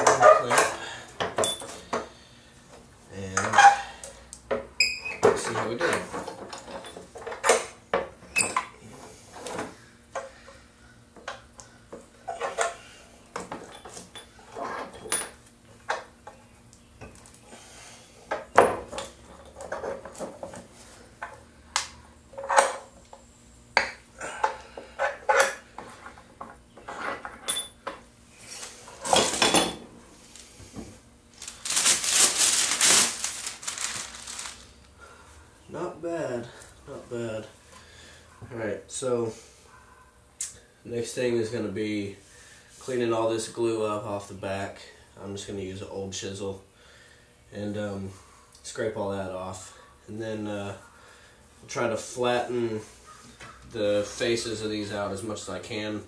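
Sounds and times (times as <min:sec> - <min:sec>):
metal pipe clamps clinking: 0:01.4 - 0:01.7.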